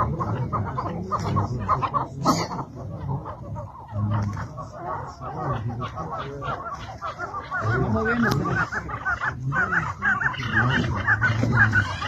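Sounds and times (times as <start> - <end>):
partridges clucking: 0.0 - 12.0.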